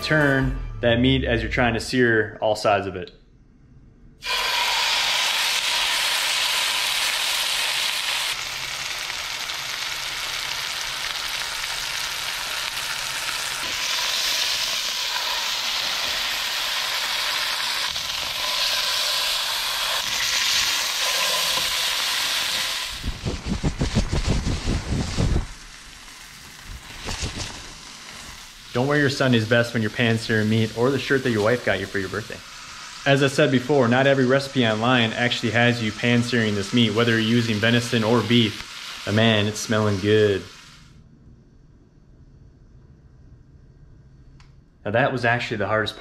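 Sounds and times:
meat sizzling in hot oil: 4.2s - 40.9s.

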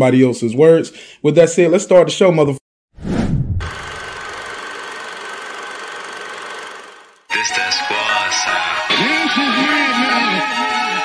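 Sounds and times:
deep boom dropping in pitch: 3.1s - 3.9s.

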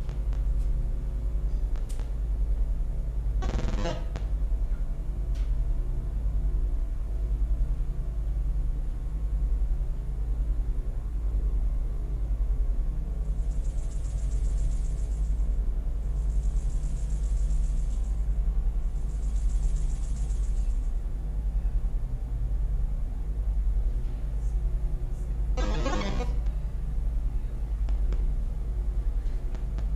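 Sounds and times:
steady low rumble: 0.0s - 29.9s
high pulsing buzz: 1.8s - 4.4s, 25.3s - 26.8s.

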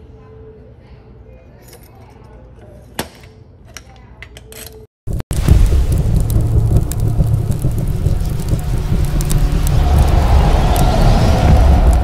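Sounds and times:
crackles: 5.1s - 12.0s
deep rumble: 5.1s - 12.0s
rising whoosh: 5.3s - 12.0s.

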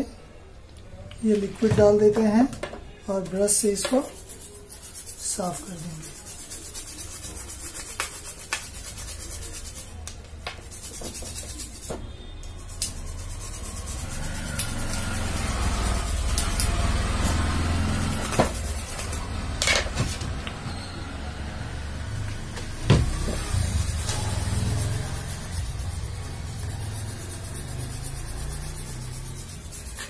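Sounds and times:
brush scrubbing circuit board: 3.5s - 10.0s, 10.6s - 11.9s, 12.5s - 19.5s, 23.4s - 30.0s.

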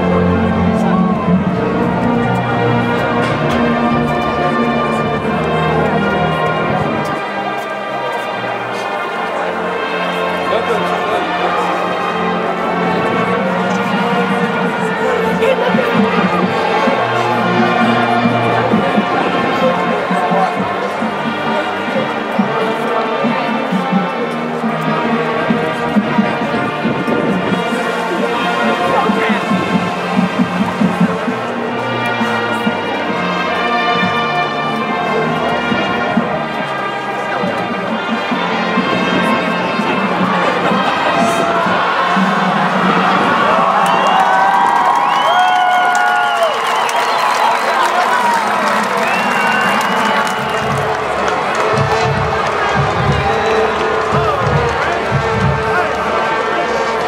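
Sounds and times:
brass band chords: 0.0s - 57.0s
stadium crowd cheering: 0.0s - 57.0s.

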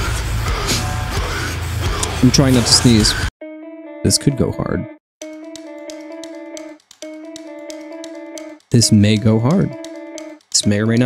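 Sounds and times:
plucked guitar phrase: 3.4s - 5.6s
light regular ticks: 5.2s - 11.0s.

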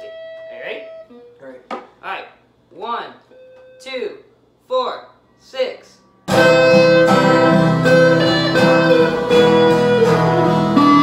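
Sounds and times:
guitar note ringing: 0.0s - 1.7s, 3.3s - 4.3s, 5.2s - 11.0s.

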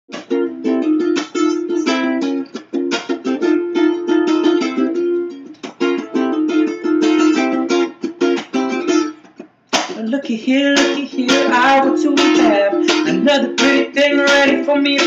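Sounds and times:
ukulele strummed: 0.1s - 15.0s.

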